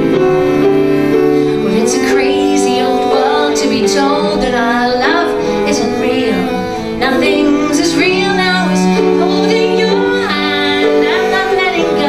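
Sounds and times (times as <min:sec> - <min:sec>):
cello: 0:00.0 - 0:12.0
grand piano: 0:00.0 - 0:12.0
woman singing: 0:01.5 - 0:12.0.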